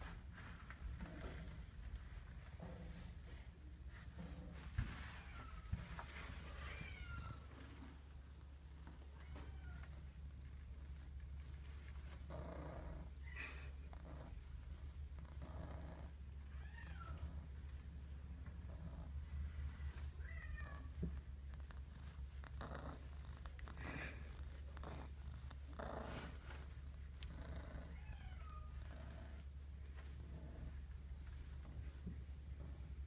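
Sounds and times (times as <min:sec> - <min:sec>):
cat purring: 0:09.8 - 0:20.1, 0:20.7 - 0:33.0.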